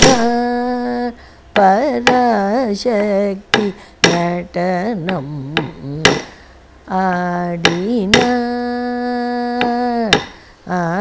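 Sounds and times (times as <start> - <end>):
wooden stick striking wooden block: 0.0 - 0.5, 1.6 - 2.4, 3.5 - 4.4, 5.1 - 6.4, 7.6 - 8.5, 9.6 - 10.4
person singing ornamented line: 0.0 - 11.0.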